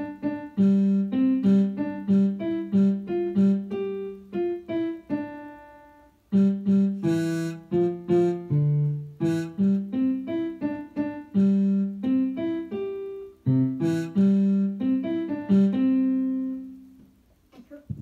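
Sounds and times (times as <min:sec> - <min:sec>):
piano melody: 0:00.0 - 0:17.0.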